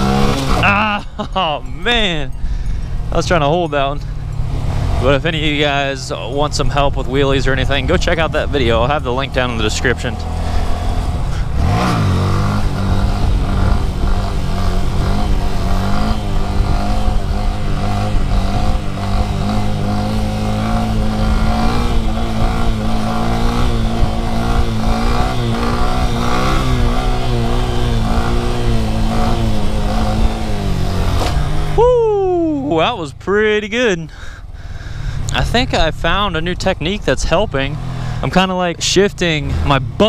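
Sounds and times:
motorcycle engine revving: 0.0s - 40.0s
wind noise on microphone: 10.4s - 31.8s.

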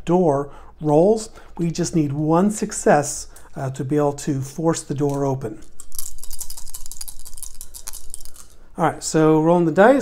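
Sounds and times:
dice rattling in hand: 5.0s - 8.8s.

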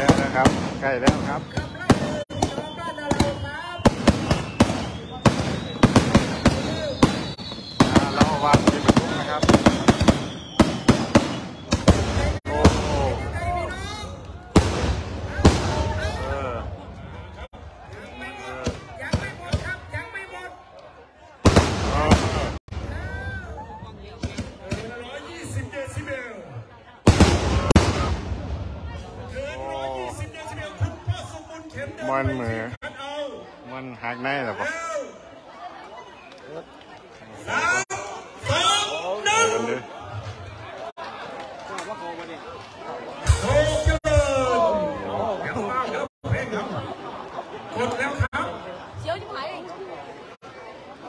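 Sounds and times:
people talking: 0.0s - 7.2s, 7.8s - 9.9s, 11.9s - 51.0s
firecrackers banging: 0.0s - 16.4s, 21.4s - 23.1s, 27.0s - 29.4s
rocket explosion bang: 27.1s - 29.2s.

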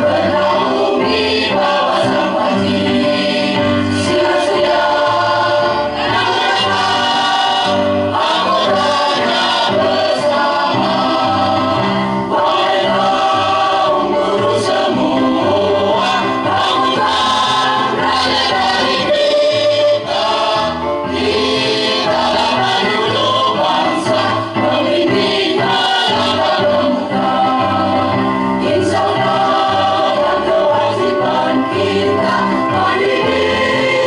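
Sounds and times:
choir singing: 0.0s - 34.0s.

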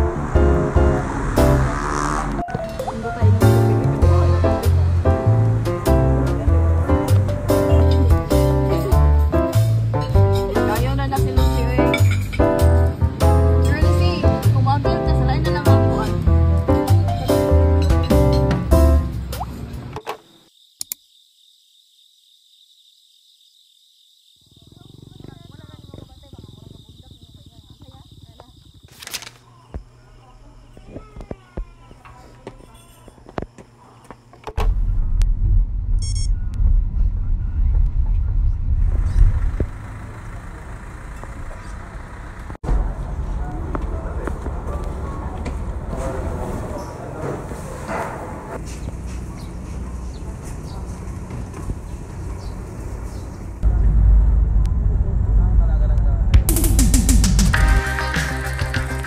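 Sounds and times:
low microphone rumble: 0.0s - 11.9s, 34.6s - 40.3s, 53.2s - 57.3s
voices talking indistinctly: 0.0s - 17.5s, 24.5s - 34.6s, 40.2s - 56.6s
ferry engines rumbling: 0.0s - 19.9s, 34.7s - 58.8s
insects chirring: 19.4s - 34.5s.

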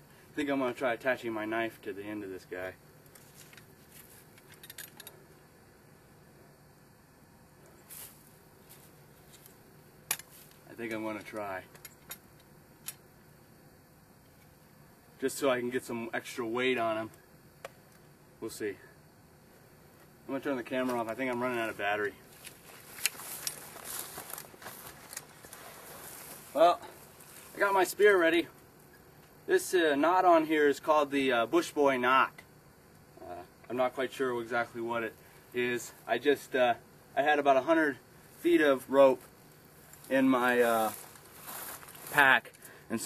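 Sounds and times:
quiet outdoor background: 0.0s - 43.0s
handling clicks and rustles: 3.0s - 5.2s, 19.6s - 27.7s
rustling in dry grass: 7.8s - 9.4s, 21.6s - 27.7s, 39.3s - 42.7s.

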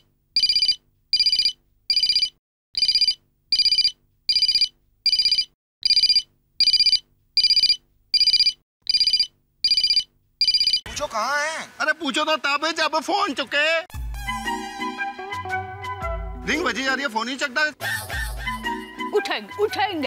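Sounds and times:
phone ringtone beeps: 0.4s - 10.8s.

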